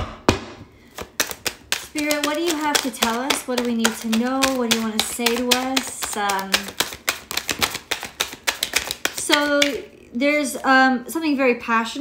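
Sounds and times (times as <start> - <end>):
cards being shuffled: 0.8 - 9.8.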